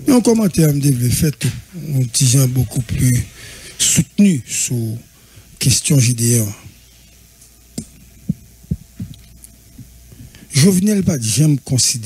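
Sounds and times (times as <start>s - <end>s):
steady low hum: 0.0s - 12.0s
short low thumps: 7.9s - 10.4s.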